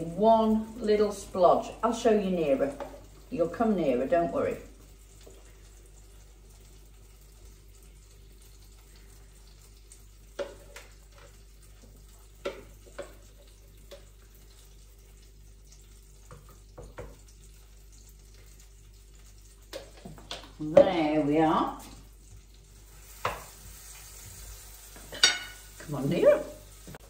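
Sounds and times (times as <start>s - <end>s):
batter frying in a pan: 0.0s - 27.0s.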